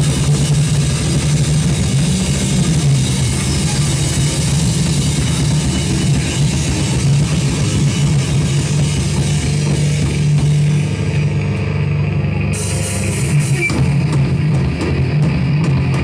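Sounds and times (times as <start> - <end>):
drum kit: 0.0 - 16.0
electric guitars: 0.0 - 16.0.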